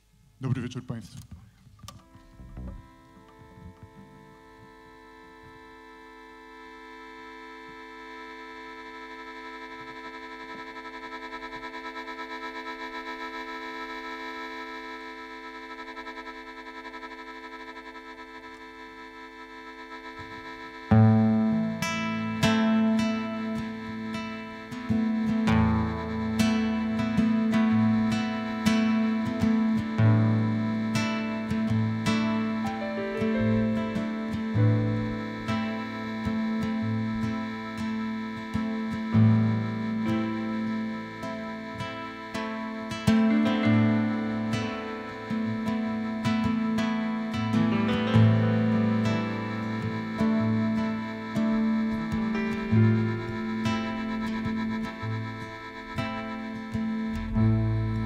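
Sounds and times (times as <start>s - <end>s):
droning chord: 1.9s - 58.0s
band with strummed guitar and bass: 21.0s - 58.0s.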